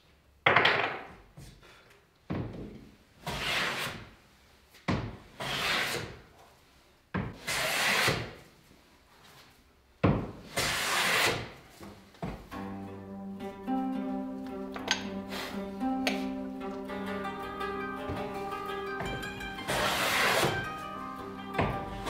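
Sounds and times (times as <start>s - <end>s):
plane blade shearing shaving: 10.6s - 11.5s, 19.6s - 20.8s.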